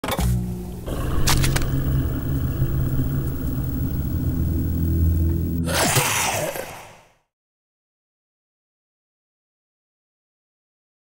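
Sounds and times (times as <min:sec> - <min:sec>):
low rumbling drone: 0:00.4 - 0:05.8.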